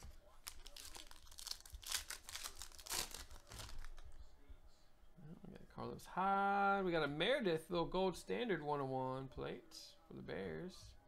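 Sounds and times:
foil wrapper tearing and crinkling: 0.0 - 4.0.

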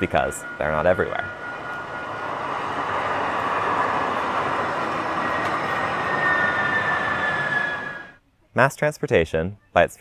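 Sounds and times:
light rail train passing: 0.0 - 8.2
thin high wheel tone: 0.0 - 8.2.

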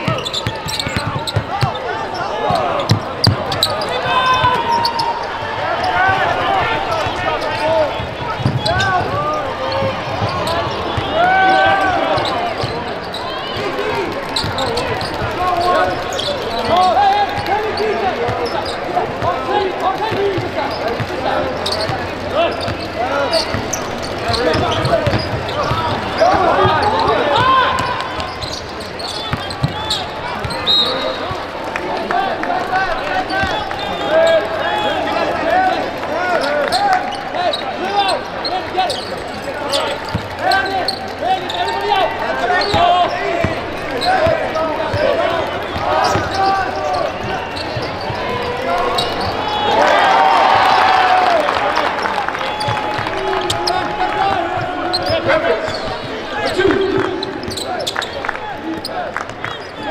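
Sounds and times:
basketball bouncing on court: 0.0 - 5.0, 7.0 - 31.4, 39.4 - 41.2, 42.6 - 49.4, 52.6 - 58.1.

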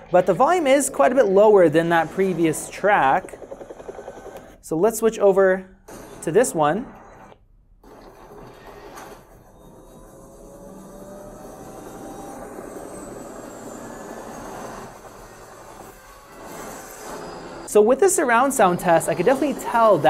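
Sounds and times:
rushing helicopter soundtrack noise: 0.6 - 4.6.

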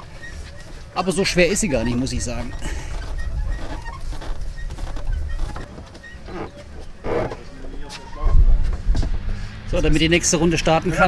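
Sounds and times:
indistinct voices: 6.2 - 8.5.

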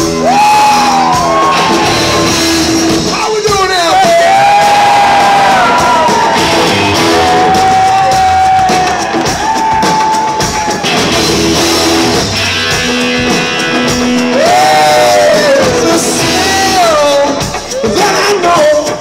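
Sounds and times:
electric guitar lead: 0.0 - 3.2, 4.3 - 19.0
drums: 0.0 - 19.0
electric guitars: 0.0 - 19.0.

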